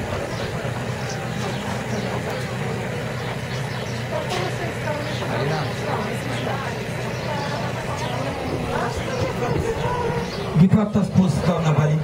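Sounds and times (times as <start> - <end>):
faint crowd voices: 0.0 - 12.0
low outdoor rumble: 0.0 - 12.0.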